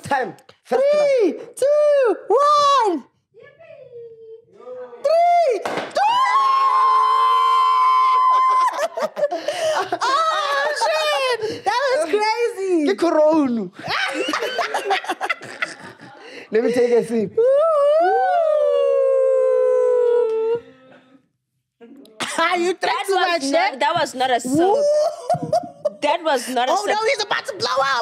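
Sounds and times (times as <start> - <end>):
high scream of excitement: 5.1 - 9.1, 17.4 - 20.6
voices cheering woooo: 5.9 - 9.1, 17.4 - 20.6.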